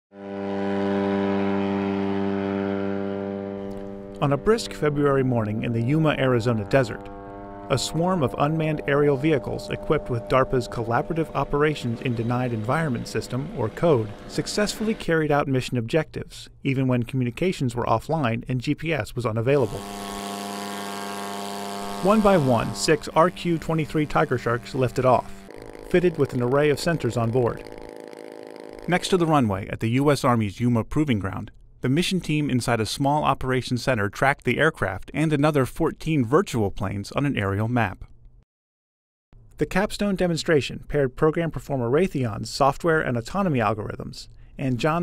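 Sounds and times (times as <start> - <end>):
aircraft engine running: 0.2 - 15.2, 19.6 - 29.7.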